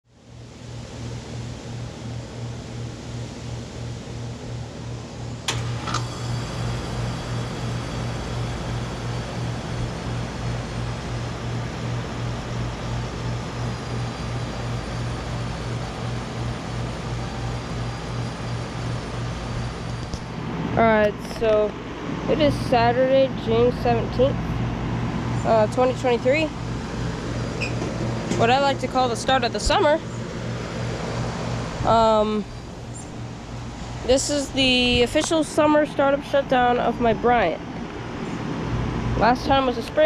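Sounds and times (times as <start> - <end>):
compressor hum pulsing: 0.1 - 40.0
condenser fan air noise: 0.1 - 40.0.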